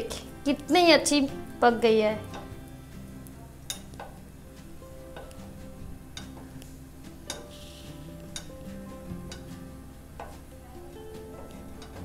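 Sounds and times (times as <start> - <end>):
quiet background music: 0.0 - 12.0
metal utensil tapping pan: 3.7 - 4.2, 6.1 - 6.5, 8.3 - 8.6.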